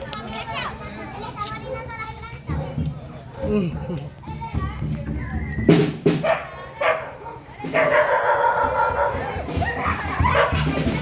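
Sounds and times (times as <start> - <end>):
children's voices: 0.0 - 11.0
dog barking: 2.5 - 2.8, 6.2 - 9.3, 10.2 - 10.7.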